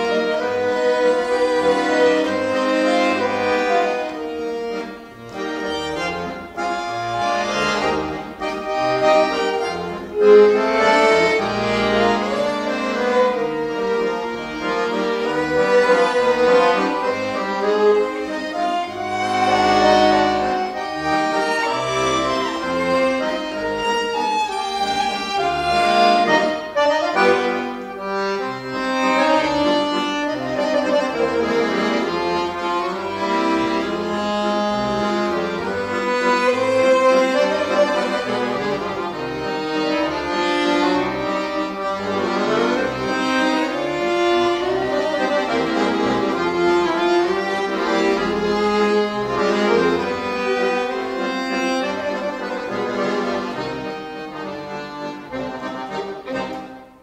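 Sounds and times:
accordion chords and melody: 0.0 - 57.0
fiddle playing a tune: 0.0 - 57.0.

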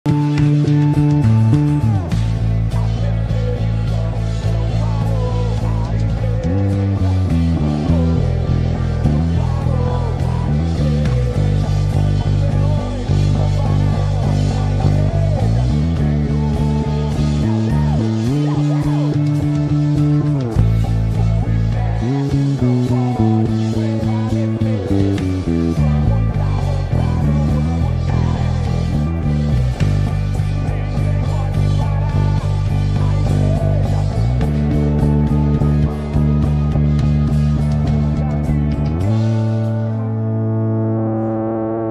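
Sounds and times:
band backing track: 0.0 - 41.9
electric bass fingerstyle: 0.0 - 41.9
lead vocal: 0.1 - 41.9.

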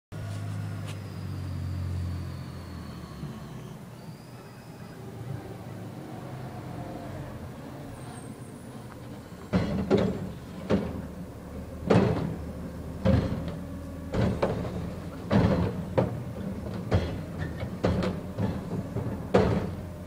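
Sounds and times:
truck engine drone: 0.1 - 20.0.

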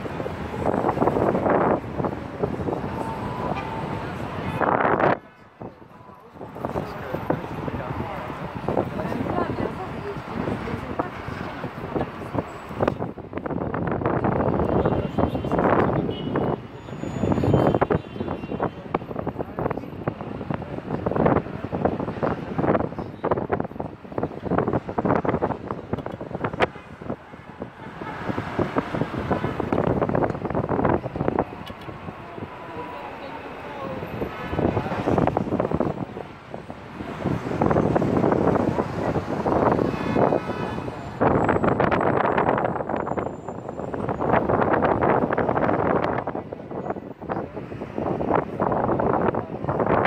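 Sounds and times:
city street traffic: 0.0 - 50.0
people talking: 2.4 - 12.6, 31.3 - 36.4.

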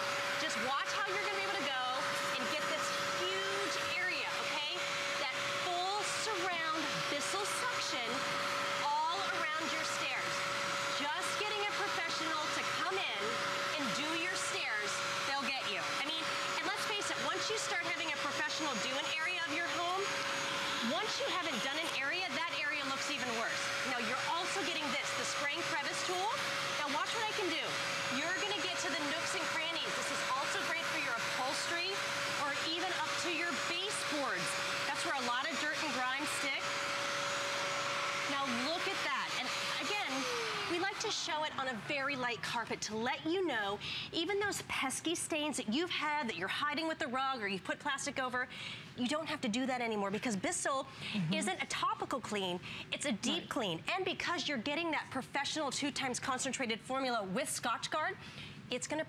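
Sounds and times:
carpet cleaner motor whine: 0.0 - 42.3.

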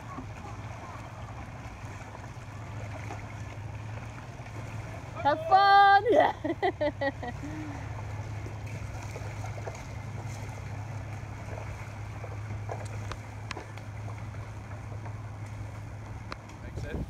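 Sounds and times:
water splashing from paddle strokes: 0.0 - 17.0.

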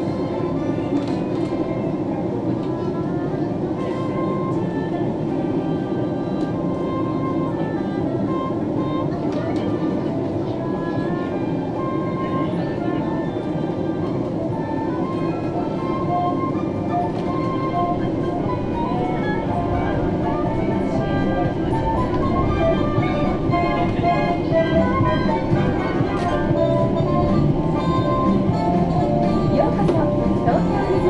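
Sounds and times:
monorail low rumble: 0.0 - 31.0
melodic background music: 13.4 - 31.0.

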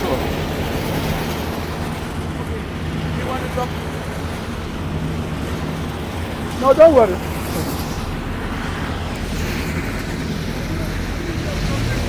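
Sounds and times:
diesel engine low drone: 0.0 - 12.0
distant voices: 0.0 - 12.0.

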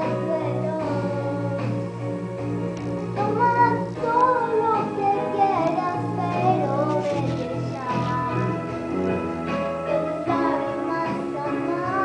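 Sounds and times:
girl singing: 0.0 - 2.0, 3.0 - 9.2, 9.8 - 12.0
musical accompaniment: 0.0 - 12.0.

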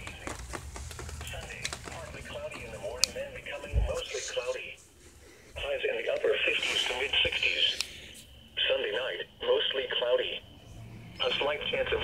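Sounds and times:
voice speaking over radio: 5.6 - 7.8, 8.6 - 10.4, 11.2 - 12.0.

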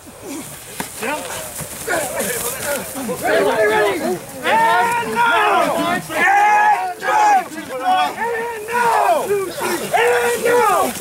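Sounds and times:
players shouting and grunting: 0.0 - 11.0.

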